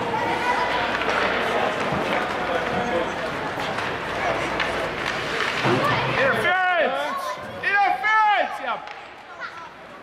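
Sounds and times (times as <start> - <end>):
ice rink din: 0.0 - 6.6.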